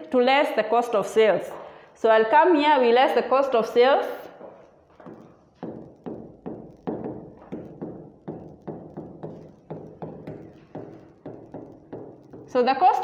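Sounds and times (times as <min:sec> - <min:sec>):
stylus knocking on glass: 0:05.0 - 0:12.7.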